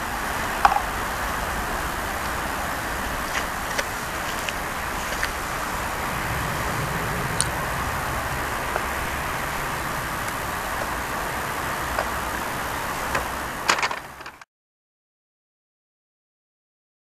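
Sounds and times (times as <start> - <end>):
road traffic rumble: 0.0 - 14.4.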